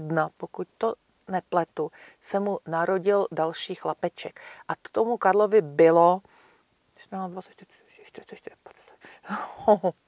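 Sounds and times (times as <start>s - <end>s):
woman speaking: 0.0s - 6.2s, 7.0s - 10.0s.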